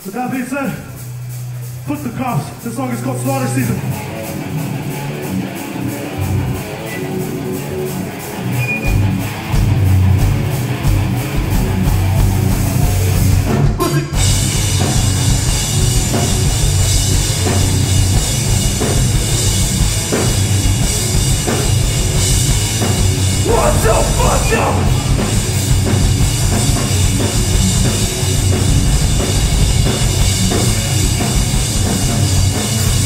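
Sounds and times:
heavy rock band playing: 0.0s - 33.0s.

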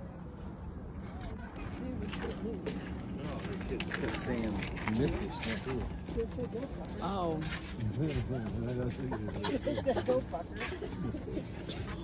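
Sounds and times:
people talking indistinctly: 1.1s - 12.0s.

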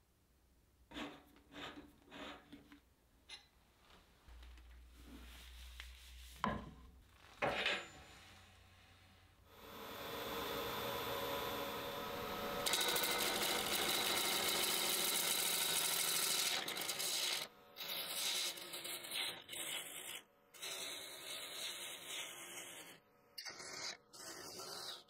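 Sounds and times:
wood lathe motor hum: 9.5s - 17.3s.

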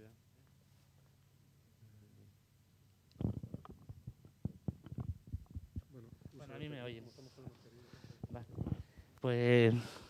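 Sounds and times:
microphone handling thumps: 3.2s - 6.5s, 8.0s - 9.0s.

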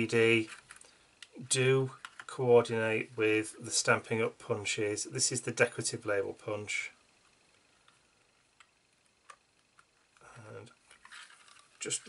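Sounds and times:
rustle of paper and plastic: 11.0s - 12.0s.

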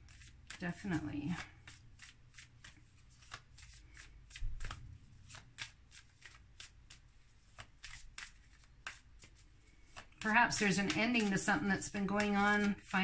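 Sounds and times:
cards being shuffled: 0.0s - 13.0s.

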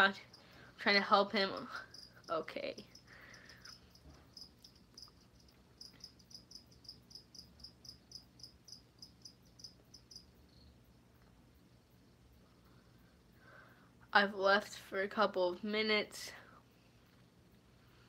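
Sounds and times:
cricket chirping: 0.0s - 13.7s.

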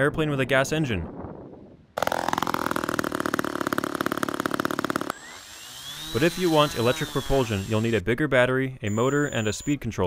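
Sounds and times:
model airplane engine buzzing: 5.0s - 8.0s.

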